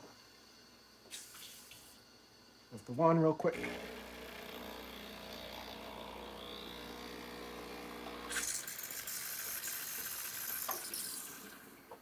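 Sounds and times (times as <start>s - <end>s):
coffee machine humming: 3.4s - 12.0s
steam wand hissing: 8.2s - 11.9s.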